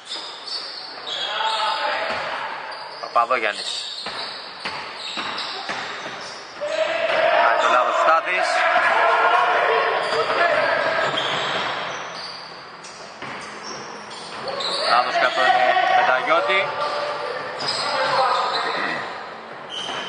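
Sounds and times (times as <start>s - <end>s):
voices: 5.5s - 11.9s, 14.2s - 20.0s.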